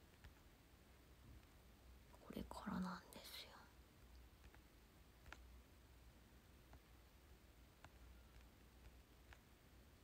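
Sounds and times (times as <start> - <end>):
young woman whispering: 2.2 - 3.8.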